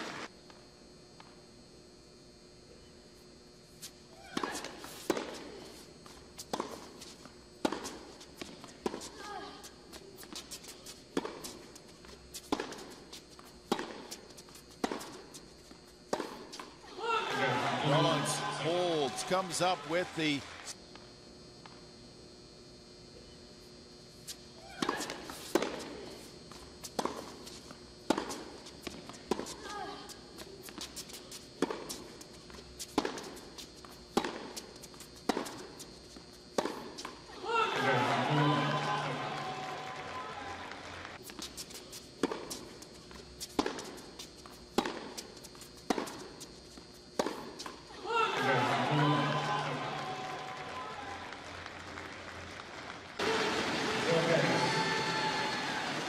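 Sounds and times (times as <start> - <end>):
tennis ball struck by rackets: 4.3 - 5.5, 6.5 - 6.9, 7.6 - 9.2, 11.1 - 11.6, 12.4 - 13.0, 13.6 - 14.2, 14.8 - 15.3, 24.8 - 26.0, 26.9 - 27.4, 28.0 - 29.7, 31.6 - 32.1, 32.9 - 33.4, 34.1 - 35.8, 36.5 - 37.2, 42.2 - 42.7, 43.4 - 46.3, 47.1 - 47.8
crowd cheering and clapping: 17.0 - 20.7, 37.4 - 41.2, 48.0 - 56.0.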